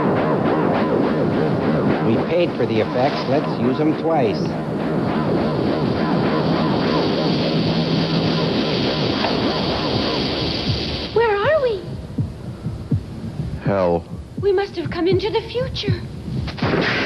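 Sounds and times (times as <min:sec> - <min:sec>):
warbling tone: 0:00.0 - 0:12.0
electronic science-fiction soundtrack: 0:00.0 - 0:13.6
low hum: 0:00.0 - 0:17.0.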